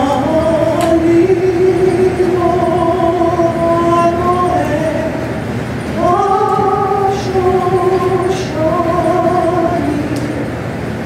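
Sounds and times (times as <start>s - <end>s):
woman singing unaccompanied: 0.0s - 10.6s.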